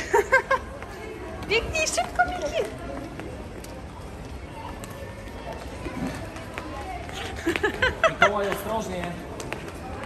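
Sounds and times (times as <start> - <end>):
footsteps on stone tiles: 0.0 - 10.0
murmur of voices: 0.0 - 10.0.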